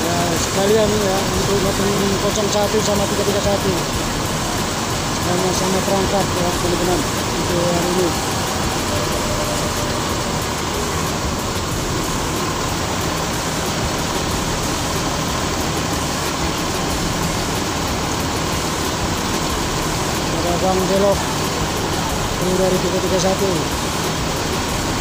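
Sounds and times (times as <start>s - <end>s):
buses idling: 0.0s - 25.0s
crowd chattering: 0.0s - 25.0s.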